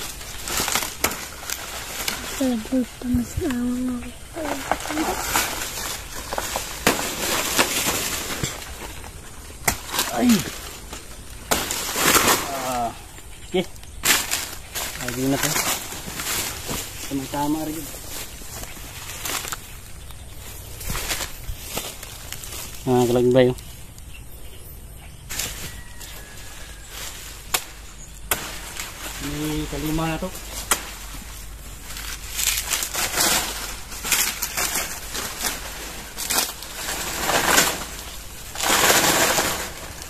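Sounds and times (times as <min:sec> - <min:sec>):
stalk snapping: 0:00.0 - 0:02.6, 0:04.4 - 0:12.9, 0:13.6 - 0:17.8, 0:18.5 - 0:20.2, 0:27.4 - 0:40.0
footsteps in dry leaves: 0:00.0 - 0:24.0, 0:25.2 - 0:40.0.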